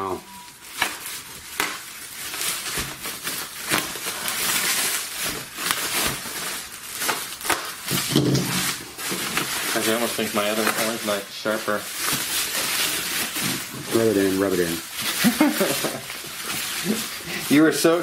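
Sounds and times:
bubble wrap crinkling: 0.0s - 18.0s.

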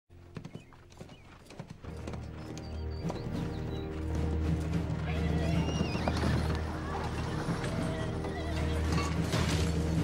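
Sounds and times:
horse hoofbeats galloping: 0.1s - 10.0s
orchestral film score: 1.8s - 10.0s.

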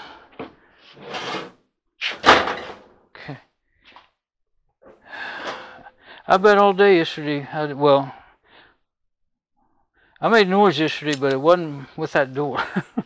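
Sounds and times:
dryer door banging shut: 2.2s - 2.8s.

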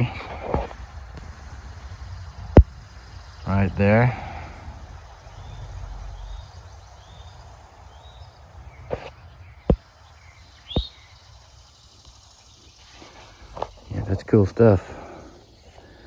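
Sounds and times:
bird chirps: 5.2s - 14.1s.

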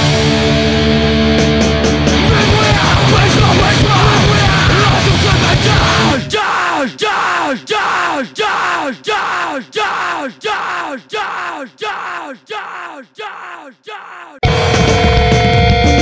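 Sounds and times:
hardcore punk band playing: 0.0s - 6.5s, 14.4s - 16.0s
looped shouted vocal: 2.2s - 14.4s.

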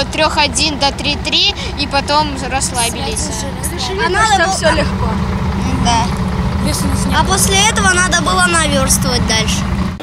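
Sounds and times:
boy speaking: 0.0s - 9.7s
steady low rumble: 0.0s - 10.0s.

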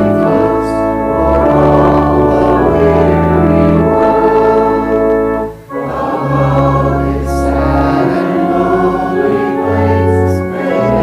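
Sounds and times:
congregation singing a hymn: 0.0s - 11.0s
organ chords: 0.0s - 11.0s.

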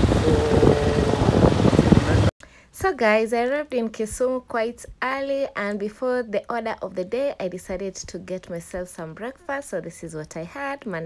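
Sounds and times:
street traffic: 0.0s - 2.3s
wind buffeting microphone: 0.0s - 2.3s.

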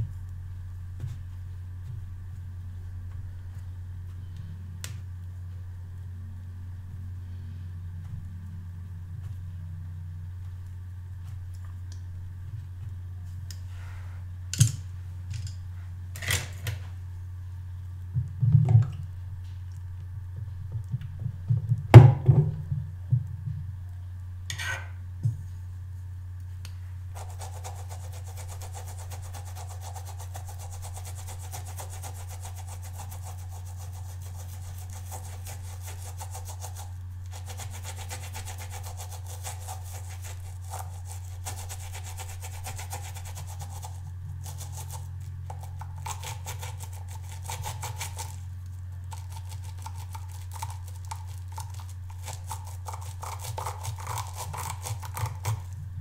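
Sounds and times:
low hum: 0.0s - 16.2s, 55.1s - 56.0s
brush scrubbing on silicone pad: 27.2s - 48.4s, 49.1s - 55.7s.

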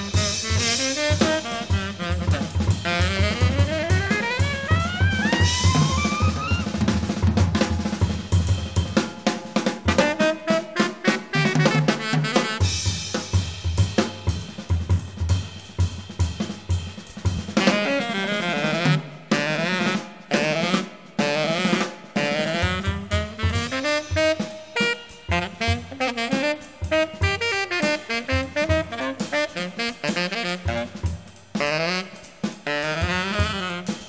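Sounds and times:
cymbal and hi-hat strokes: 0.0s - 3.2s, 12.7s - 17.7s, 23.3s - 34.0s
tenor saxophone playing: 0.0s - 6.9s, 10.0s - 12.9s, 17.6s - 34.0s
drums: 0.0s - 34.0s.

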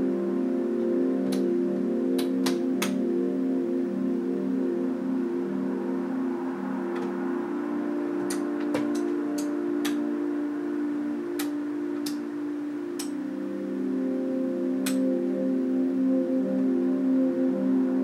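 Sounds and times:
ambient drone music: 0.0s - 18.0s.

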